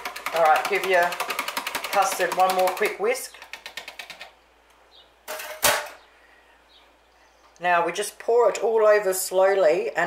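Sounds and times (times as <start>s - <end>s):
whisk scraping jug: 0.0s - 4.2s
whisk clacking against jug: 0.0s - 4.3s.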